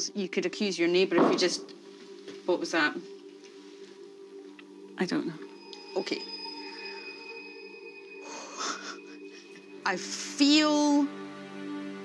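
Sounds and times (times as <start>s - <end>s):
quiet background music chord: 0.0s - 12.0s.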